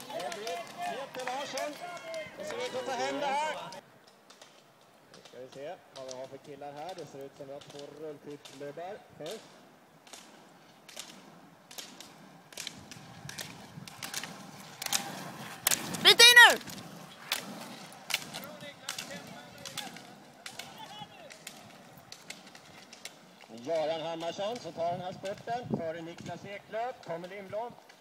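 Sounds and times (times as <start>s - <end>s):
ski poles clicking on asphalt: 0.0s - 28.0s
person shouting: 16.0s - 16.6s.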